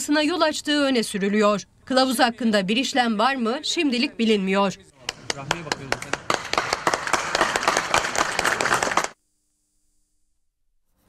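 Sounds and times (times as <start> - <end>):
group applauding: 5.0 - 9.2.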